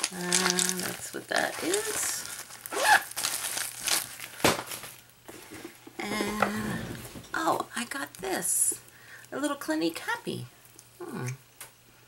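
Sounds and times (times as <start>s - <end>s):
pouch crinkling and rustling: 0.0s - 5.1s.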